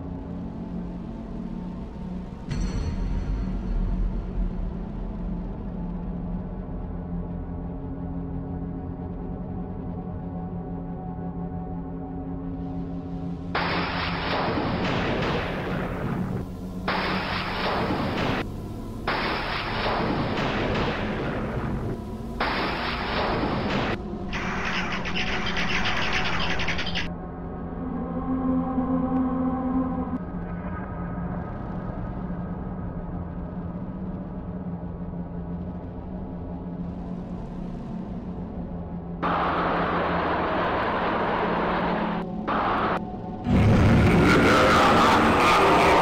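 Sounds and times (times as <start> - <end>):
low music drone: 0.0 - 46.0
crackling blast: 13.6 - 25.0, 39.2 - 45.9
bats chattering and fluttering: 23.8 - 27.1
rushing noise with falling tone: 39.2 - 46.0.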